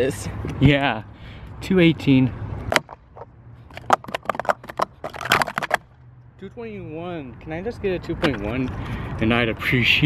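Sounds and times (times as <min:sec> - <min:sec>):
plastic cups clattering: 0:02.7 - 0:05.8.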